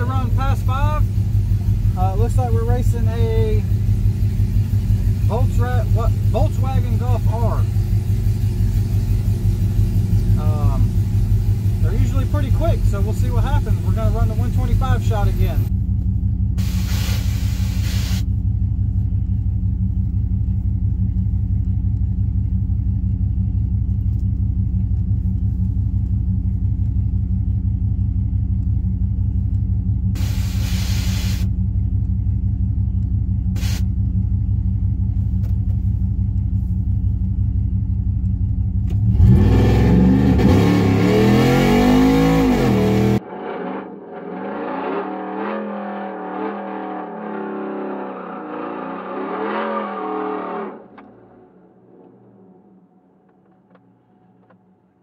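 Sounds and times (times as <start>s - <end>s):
pickup truck engine idling: 0.0s - 38.9s
engine revving: 1.6s - 15.7s, 38.8s - 52.2s
short bursts of hiss: 16.6s - 18.2s, 30.2s - 31.5s, 33.6s - 33.9s.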